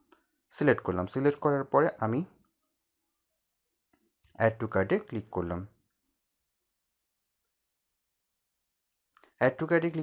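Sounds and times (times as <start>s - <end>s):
man narrating: 0.5s - 2.3s, 4.4s - 5.7s, 9.4s - 10.0s.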